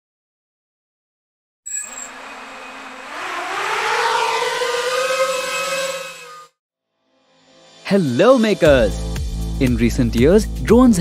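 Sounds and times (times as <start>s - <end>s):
drone propellers whining: 1.7s - 6.6s.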